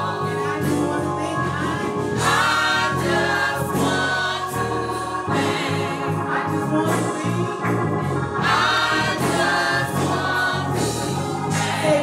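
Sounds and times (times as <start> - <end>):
bass line: 0.0 - 12.0
gospel choir singing: 0.0 - 12.0
keyboard: 0.0 - 12.0.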